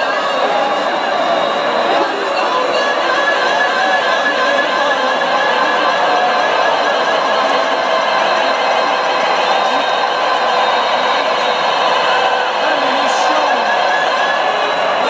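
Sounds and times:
electronic dance music: 0.0 - 15.0.

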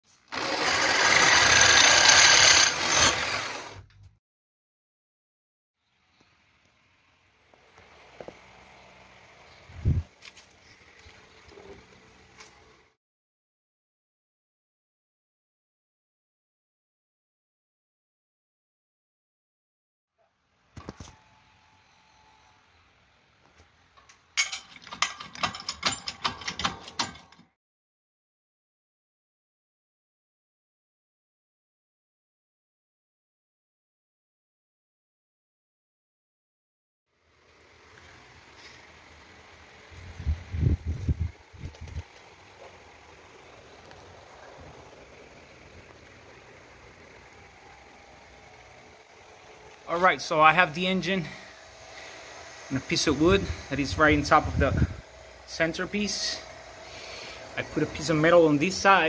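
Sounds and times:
drill press grinding through steel: 0.2 - 3.9.

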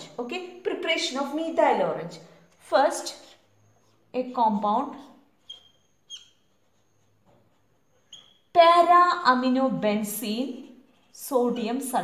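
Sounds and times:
marker squeaking on paper: 2.3 - 8.9
marker tip scraping: 5.4 - 8.5.

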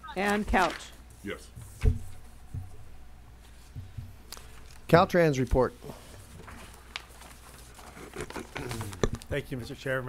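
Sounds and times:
steady low hum: 0.9 - 10.0.

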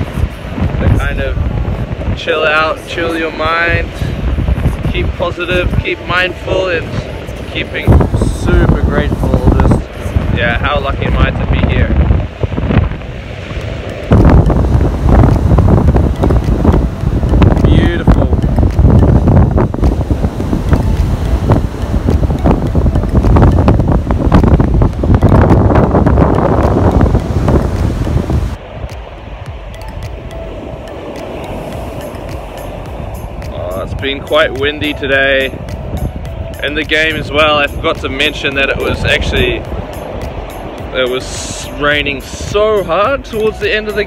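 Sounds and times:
surf breaking on beach: 0.0 - 44.0
wind buffeting microphone: 0.0 - 44.0.

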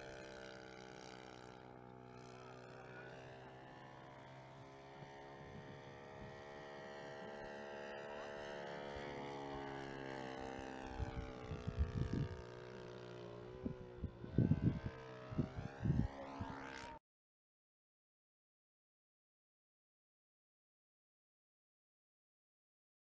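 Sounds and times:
model plane engine: 0.0 - 17.0
wind buffeting microphone: 11.0 - 12.5, 13.5 - 16.2.

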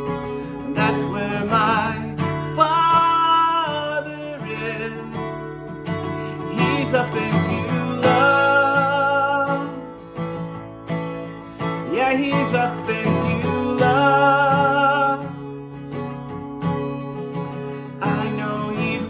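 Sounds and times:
man singing: 0.0 - 10.1, 11.6 - 15.5, 17.8 - 19.0
strummed acoustic guitar: 0.0 - 19.0.

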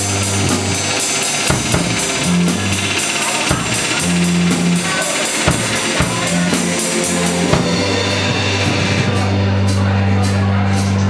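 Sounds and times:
cymbal strikes: 0.0 - 11.0
drum kit: 0.0 - 11.0
heavy drum hit: 0.0 - 11.0.

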